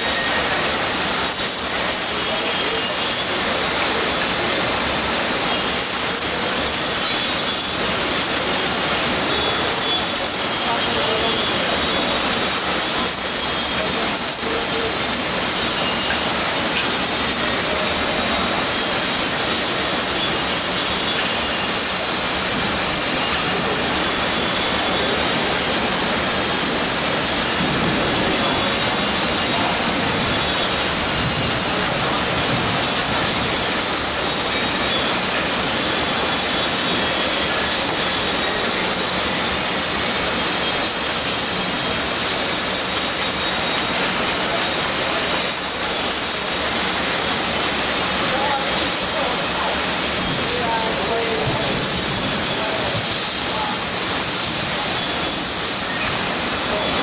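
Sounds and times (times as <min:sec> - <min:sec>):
foundry machinery roar: 0:00.0 - 0:57.0
high hiss: 0:00.0 - 0:57.0.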